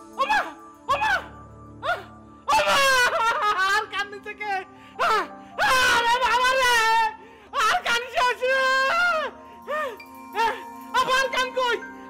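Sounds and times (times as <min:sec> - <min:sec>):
background music: 0:00.0 - 0:12.0
man wailing: 0:00.2 - 0:04.1, 0:05.0 - 0:09.3, 0:10.4 - 0:11.8.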